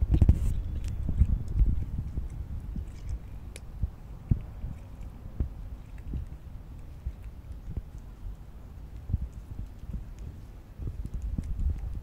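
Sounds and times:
cat crunching dry kibble: 0.0s - 12.0s.

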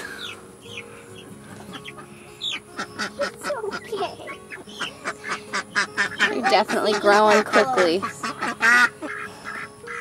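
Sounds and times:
fowl calling: 0.0s - 10.0s.

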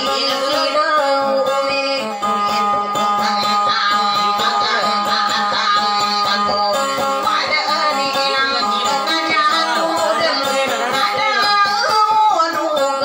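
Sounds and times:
plucked acoustic guitar: 0.0s - 13.0s
woman singing folk song: 0.0s - 13.0s.

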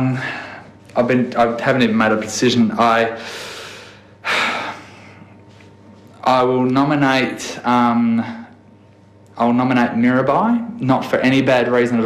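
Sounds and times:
man breathing: 0.0s - 0.9s, 3.1s - 5.6s.

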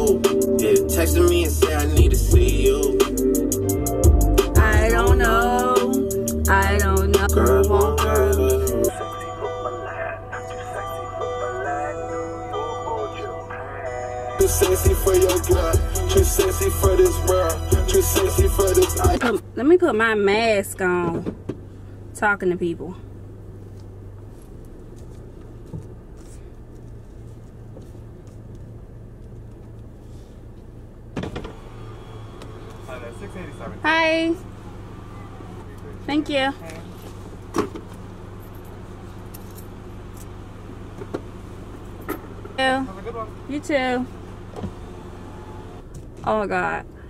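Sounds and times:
car engine idling: 0.0s - 47.0s.

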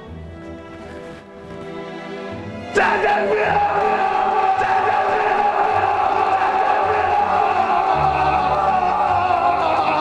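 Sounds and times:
background music: 0.0s - 10.0s
man wailing: 2.7s - 10.0s.

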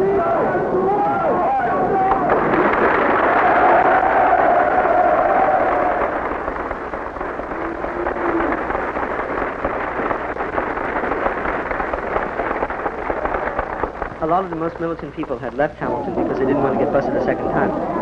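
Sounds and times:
crowd noise: 0.0s - 18.0s
long held cry: 3.2s - 6.3s.

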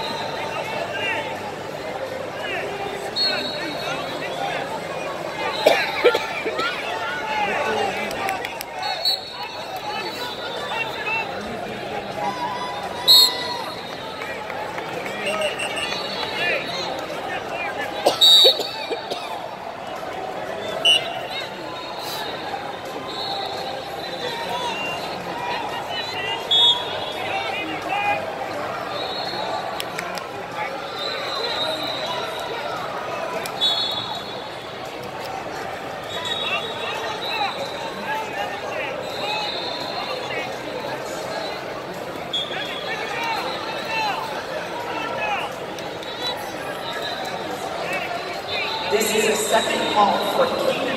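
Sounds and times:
crowd babble and shouting: 0.0s - 50.9s
shrill whistle blasts: 8.8s - 10.8s, 13.0s - 13.9s, 26.4s - 27.2s, 33.6s - 34.5s, 36.1s - 37.8s.

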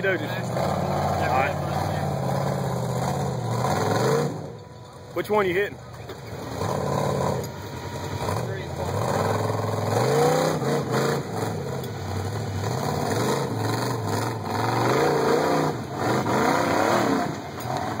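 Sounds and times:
buggy engine revving hard: 0.0s - 4.6s, 6.1s - 18.0s.

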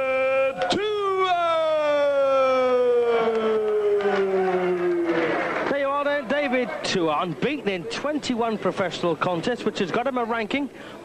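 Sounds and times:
announcer drawing out long call: 0.0s - 6.8s
crowd noise: 0.0s - 11.0s
commentary speech: 0.3s - 10.7s.

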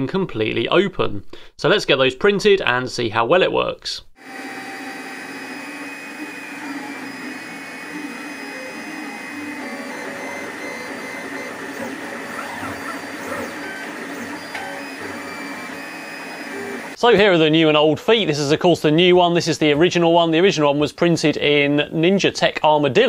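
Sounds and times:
steady mechanical hum: 4.2s - 17.0s
stepper motors whining: 4.2s - 17.0s.

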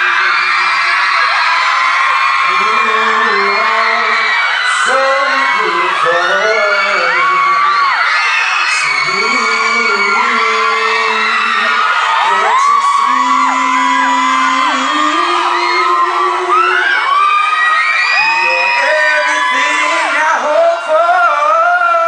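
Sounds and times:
crowd screaming and whooping: 0.0s - 22.0s
live music with long held notes: 0.0s - 22.0s.

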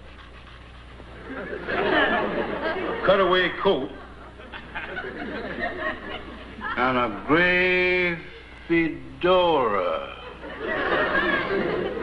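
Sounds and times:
audience laughter: 1.1s - 7.3s, 9.9s - 12.0s.

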